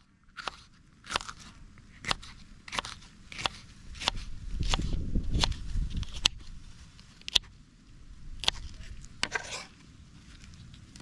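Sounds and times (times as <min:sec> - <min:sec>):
knife slicing pepper: 0:00.4 - 0:06.4.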